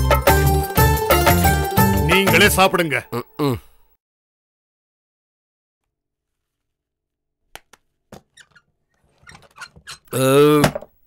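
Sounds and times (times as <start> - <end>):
door squeaks: 8.2 - 10.9.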